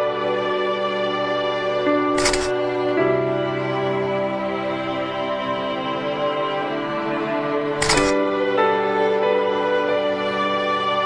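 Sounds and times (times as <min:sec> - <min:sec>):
slow music with held notes: 0:00.0 - 0:11.0
camera shutter click: 0:02.2 - 0:02.5, 0:07.8 - 0:08.2.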